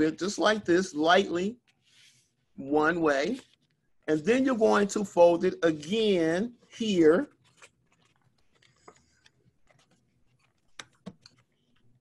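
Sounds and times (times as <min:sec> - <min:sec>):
paper rustling and tapping: 0:07.4 - 0:12.0.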